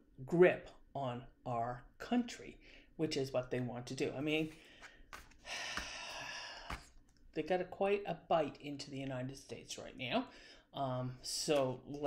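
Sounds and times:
woman breathing in: 4.6s - 7.0s, 10.3s - 10.7s.

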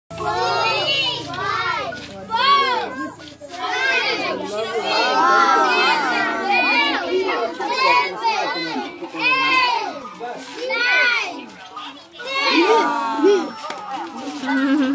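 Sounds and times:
children talking and calling out: 0.1s - 14.9s.

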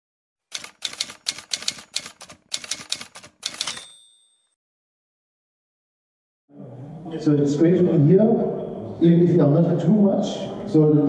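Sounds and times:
typewriter keys clacking: 0.5s - 4.1s
typewriter bell ding: 0.6s - 4.6s.

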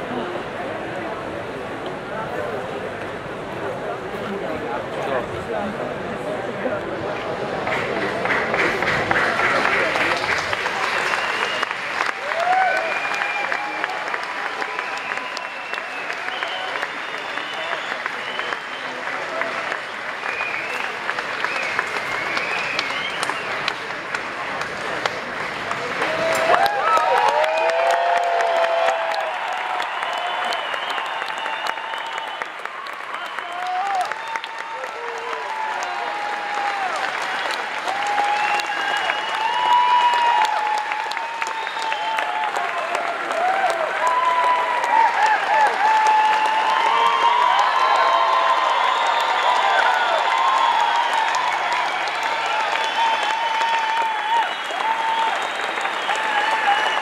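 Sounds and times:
crowd applauding and cheering: 5.0s - 57.0s
crowd shouts: 10.9s - 17.8s, 25.8s - 57.0s.

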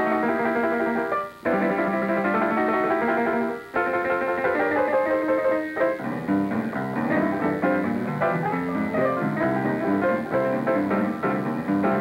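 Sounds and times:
jazz piano runs: 0.0s - 12.0s.

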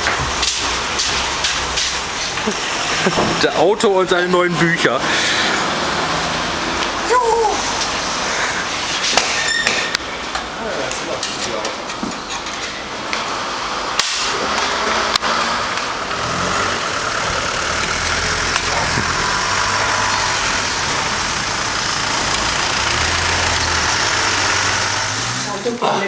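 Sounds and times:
truck engine idling: 12.8s - 25.8s.

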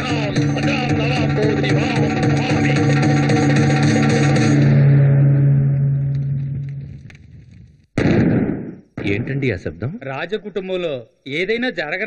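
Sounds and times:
sudden loud burst: 8.0s - 9.7s.

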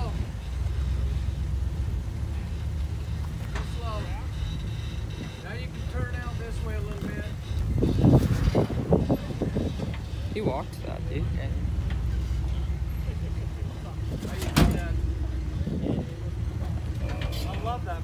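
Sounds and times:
off-road engine at low revs: 0.0s - 18.0s
faint voices: 2.3s - 18.0s
rumbling with knocks: 11.5s - 18.0s.

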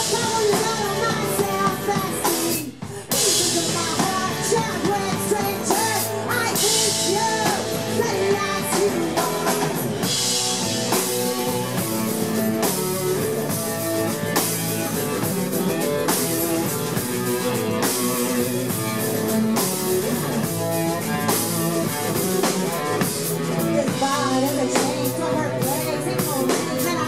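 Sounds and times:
drum kit with cymbal hits: 0.0s - 27.0s
electric guitar: 0.0s - 27.0s.

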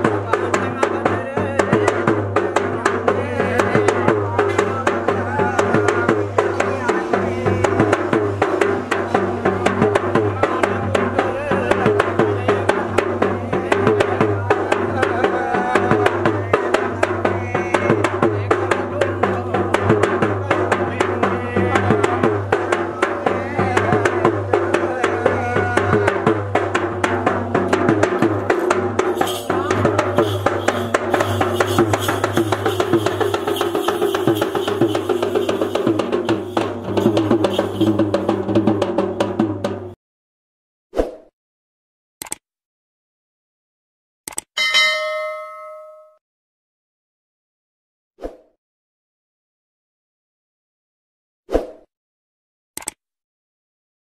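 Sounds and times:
fast ritual drumming: 0.0s - 40.0s
wavering melody: 44.6s - 46.2s.

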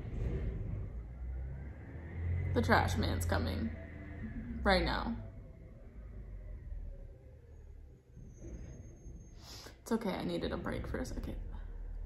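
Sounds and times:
garbage truck engine rumble: 0.0s - 12.0s.

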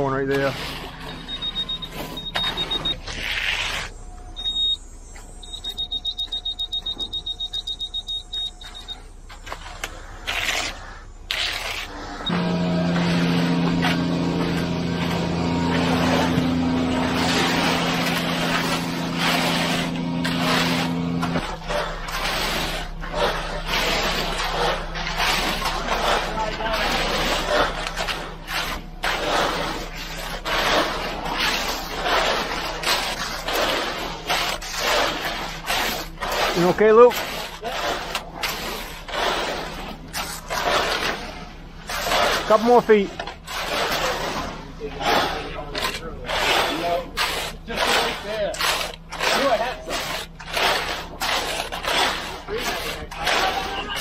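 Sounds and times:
rakes scraping wet concrete: 0.0s - 4.8s, 5.4s - 54.0s
steady low hum: 0.0s - 54.0s
high-pitched electronic beeping: 1.0s - 9.4s.

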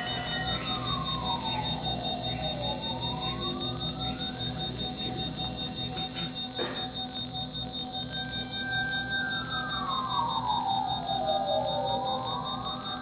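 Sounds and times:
low drone: 0.0s - 6.6s.

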